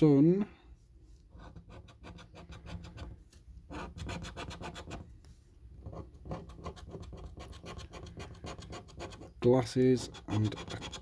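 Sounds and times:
coin scratching a scratch card: 1.3 - 5.0, 5.8 - 9.4, 10.0 - 11.0.

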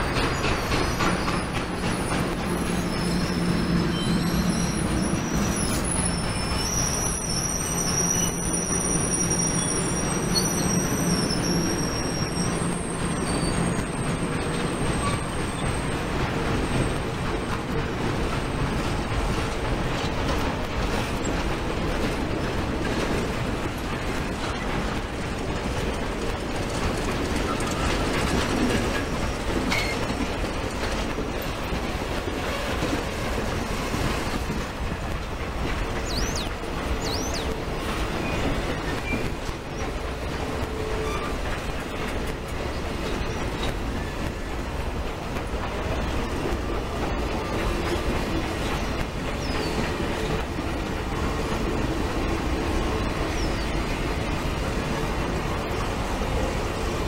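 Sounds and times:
high wheel squeals: 0.0 - 16.0, 40.8 - 41.5
train wheels rumbling on rails: 0.0 - 57.0.

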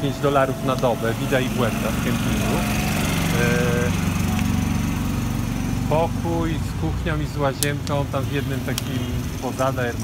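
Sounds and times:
small petrol engine running: 0.0 - 10.0.

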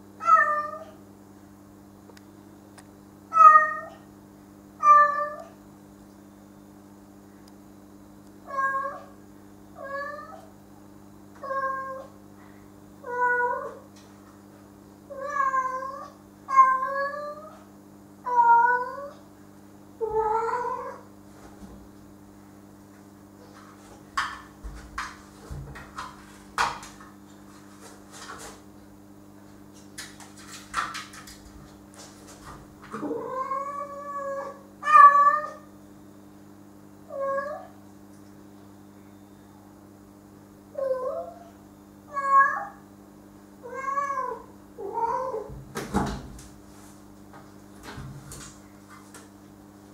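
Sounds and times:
steady low hum: 0.0 - 49.9
cat meowing: 33.0 - 35.6, 42.1 - 42.8, 43.6 - 45.5.

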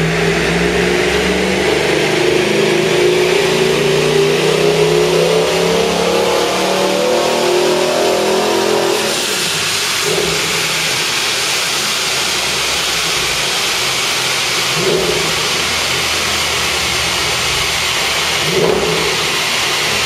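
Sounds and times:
engine revving on dynamometer: 0.0 - 20.0.

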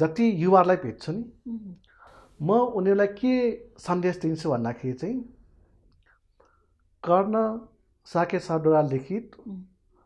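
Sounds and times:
man speaking: 0.0 - 5.4, 7.0 - 9.8
breathing: 1.8 - 2.4, 5.5 - 6.9.

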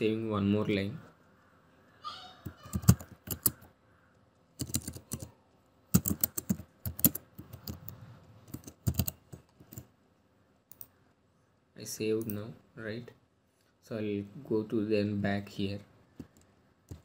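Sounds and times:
computer keyboard typing: 2.4 - 3.7, 4.6 - 5.3, 5.9 - 9.9.

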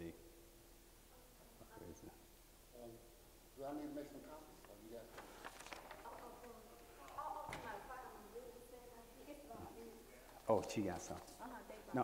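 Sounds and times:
faint talking in a room: 0.0 - 12.0.

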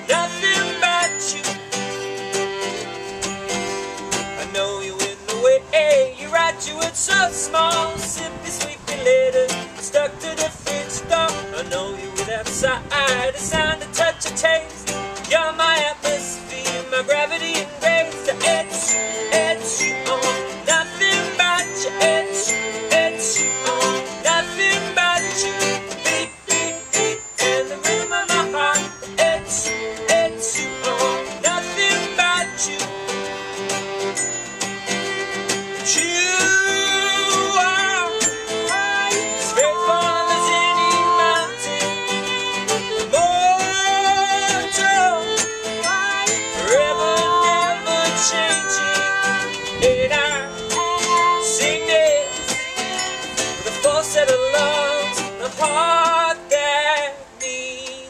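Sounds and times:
violin: 0.0 - 4.8, 6.3 - 56.4
acoustic guitar strumming: 0.0 - 58.0.

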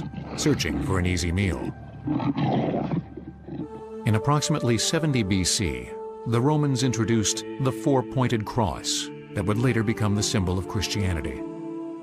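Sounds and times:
wild animal call: 0.0 - 1.0, 1.8 - 4.0.

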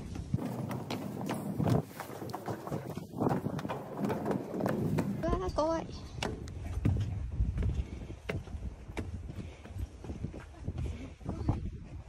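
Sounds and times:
footsteps climbing hard stairs: 0.0 - 11.7.

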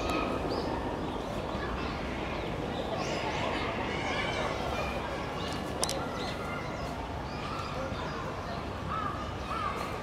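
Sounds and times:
low background noise: 0.0 - 10.0.

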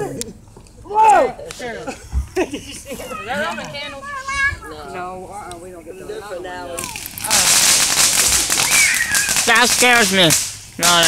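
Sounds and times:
firework fountain hissing and crackling: 1.4 - 11.0.

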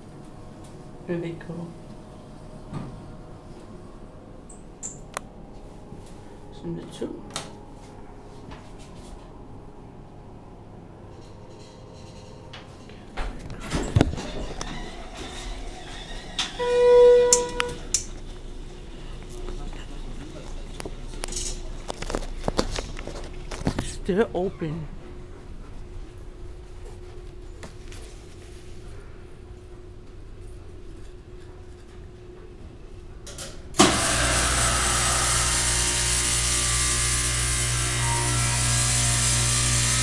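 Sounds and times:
elevator low hum: 0.0 - 38.8
high squeaks: 14.2 - 17.9.

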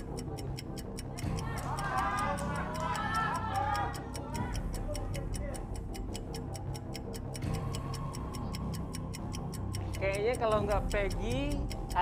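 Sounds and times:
countdown clock ticking: 0.0 - 12.0
low music bed: 0.0 - 12.0.

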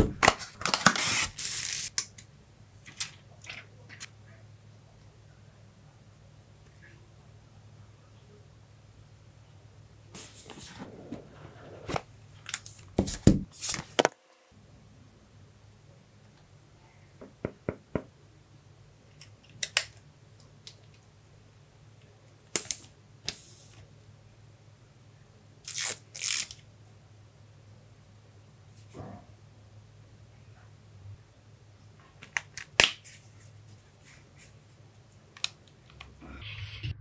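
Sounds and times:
plastic and cardboard rustling: 0.0 - 1.9.

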